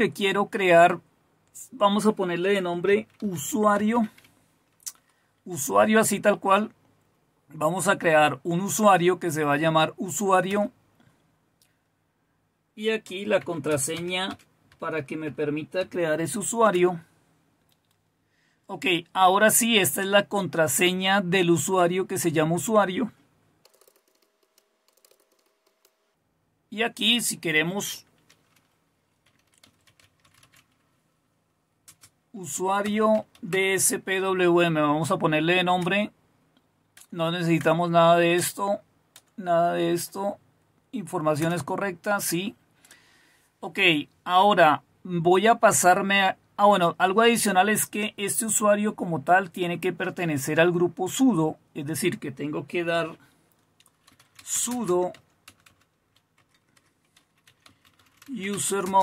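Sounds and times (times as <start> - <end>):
computer keyboard keystrokes: 13.7 - 14.8, 23.6 - 26.0, 28.2 - 30.8, 31.9 - 32.2, 53.8 - 59.0.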